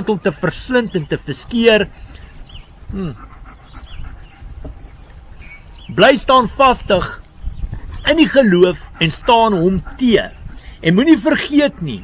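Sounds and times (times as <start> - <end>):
low wind rumble: 0.0 - 12.0
faint bird chirps: 1.9 - 6.0
man humming hmm: 2.9 - 3.3.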